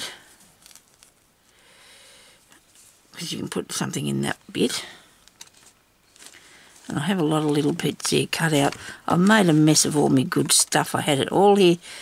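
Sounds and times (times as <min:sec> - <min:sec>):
paper and fabric rustling: 0:00.3 - 0:01.3, 0:02.6 - 0:03.2, 0:05.3 - 0:10.6.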